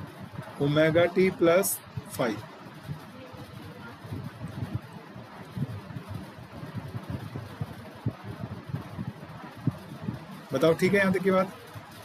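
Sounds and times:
faint steady hiss: 0.0s - 12.0s
low irregular rumble: 0.0s - 12.0s.

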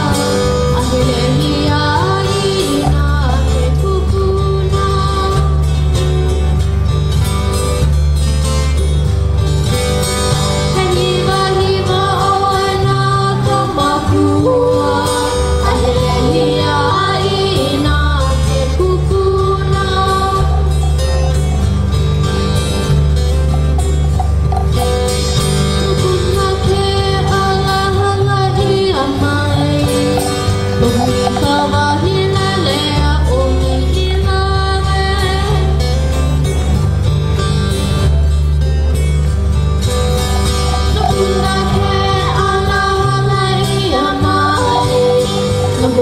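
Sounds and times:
guitar and ukuleles strumming: 0.0s - 46.0s.

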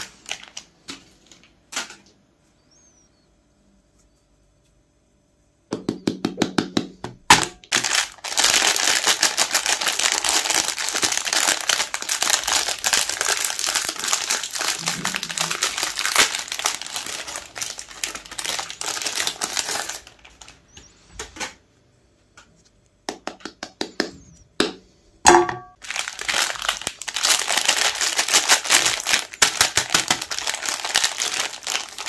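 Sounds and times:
plastic wrapper crinkling: 0.0s - 2.0s, 7.3s - 20.8s, 25.8s - 32.0s.

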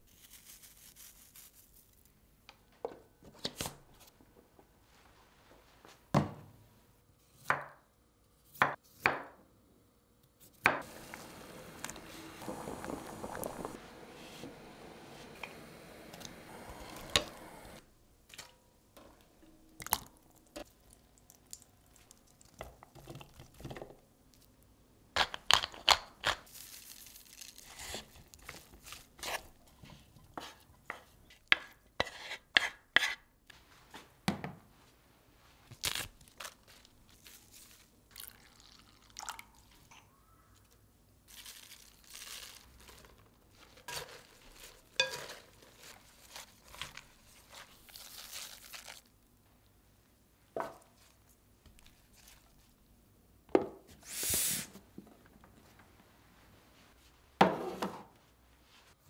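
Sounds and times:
leafy greens rustling in glass bowl: 0.1s - 2.1s, 26.5s - 29.1s, 41.3s - 49.1s.

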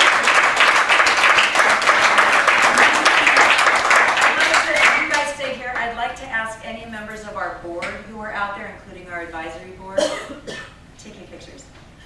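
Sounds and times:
person coughing: 10.0s - 10.8s.

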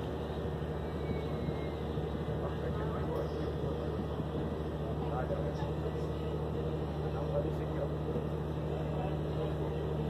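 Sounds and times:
ferry engine low drone: 0.0s - 10.0s
faint voices: 1.7s - 10.0s.

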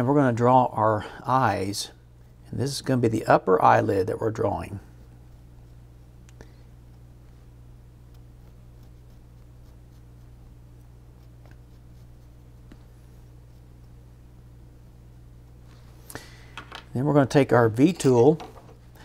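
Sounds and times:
steady low hum: 0.0s - 19.0s
pencil scratching on wood: 8.4s - 10.4s, 11.1s - 13.8s.

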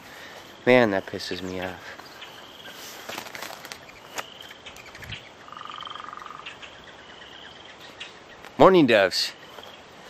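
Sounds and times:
high bird calls: 0.0s - 10.0s
rapid bird trill: 0.5s - 8.4s.

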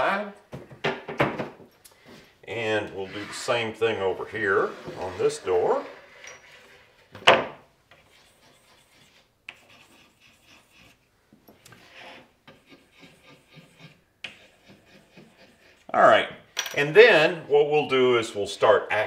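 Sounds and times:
chalk scratching on wood: 3.0s - 6.9s, 7.9s - 15.9s.

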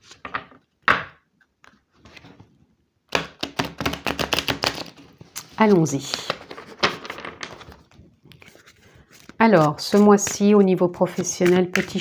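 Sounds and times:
cards being handled: 3.2s - 12.0s
cards riffle-shuffled: 3.4s - 12.0s.

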